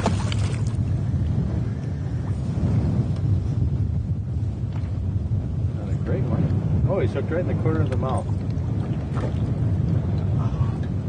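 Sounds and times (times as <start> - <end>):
fish splashing at water surface: 0.0 - 0.8
steady low rumble: 0.0 - 11.0.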